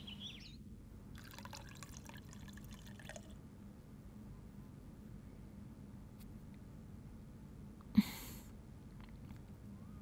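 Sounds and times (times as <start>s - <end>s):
tea pouring into cup: 1.1s - 3.4s.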